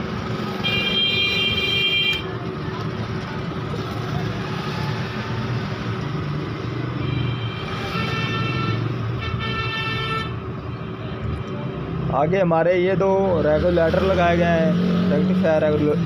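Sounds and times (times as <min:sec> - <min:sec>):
road traffic: 0:00.0 - 0:16.0
vehicle horn: 0:00.6 - 0:02.3, 0:07.0 - 0:10.4.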